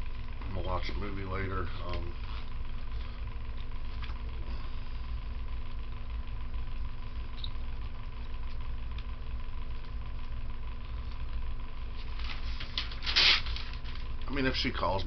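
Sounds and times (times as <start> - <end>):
electric fan humming: 0.0 - 15.0.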